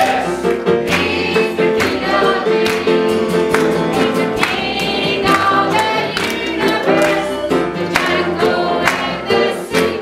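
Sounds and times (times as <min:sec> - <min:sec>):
children and adults singing gospel: 0:00.0 - 0:10.0
instrumental accompaniment: 0:00.0 - 0:10.0.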